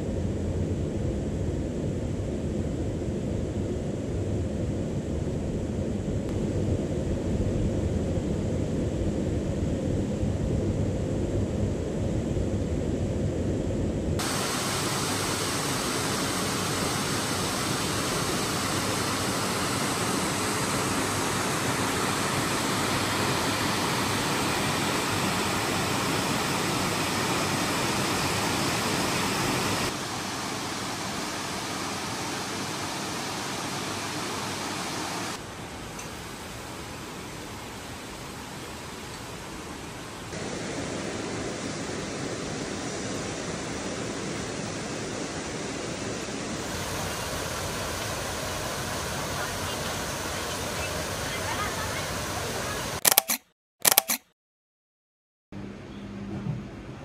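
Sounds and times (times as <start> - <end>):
waterfall rushing: 14.2 - 35.4.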